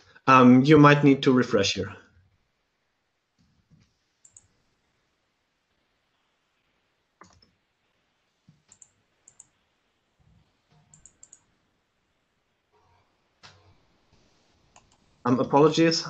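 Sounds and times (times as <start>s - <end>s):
keyboard keystroke clicks: 8.6s - 9.5s, 10.8s - 11.5s.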